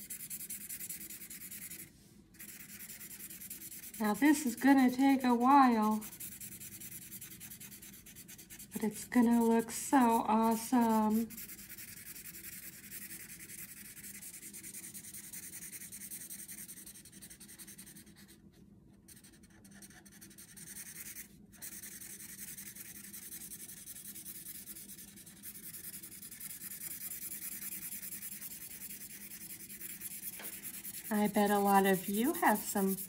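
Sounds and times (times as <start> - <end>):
marker scratching on paper: 0.0 - 18.4, 19.1 - 33.0.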